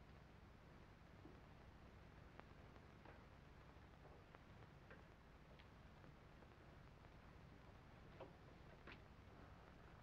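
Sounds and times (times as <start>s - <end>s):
old film soundtrack hum and hiss: 0.0s - 10.0s.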